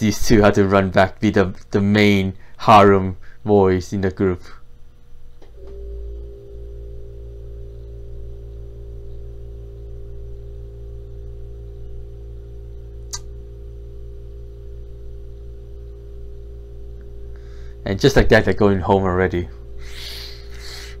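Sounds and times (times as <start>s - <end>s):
soft sustained background music: 5.7s - 19.8s
sharp click: 13.1s - 13.4s.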